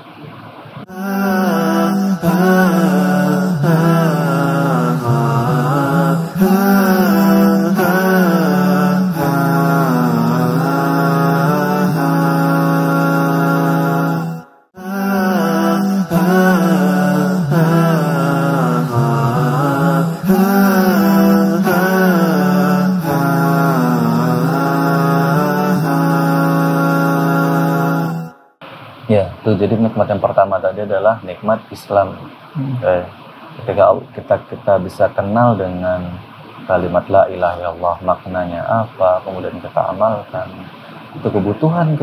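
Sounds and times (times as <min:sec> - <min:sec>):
person chanting melodic lines: 0:00.9 - 0:28.3
steady low drone: 0:01.0 - 0:28.2.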